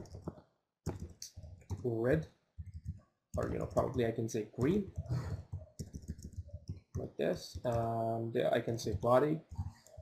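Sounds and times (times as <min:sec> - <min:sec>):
keyboard keys clicking: 0:05.7 - 0:06.8.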